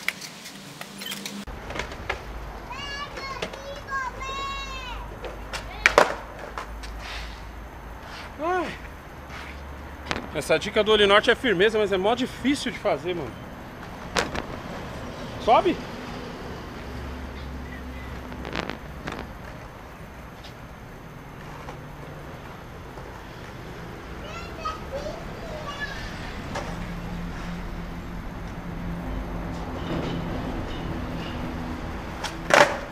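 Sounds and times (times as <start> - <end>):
skateboard knocking on concrete: 1.5 - 7.0, 13.8 - 14.6, 18.3 - 20.6, 21.4 - 23.7, 26.5 - 27.0, 32.2 - 32.9
toddler calling out: 2.7 - 5.1, 24.2 - 26.4
steady low rumble: 13.4 - 24.0.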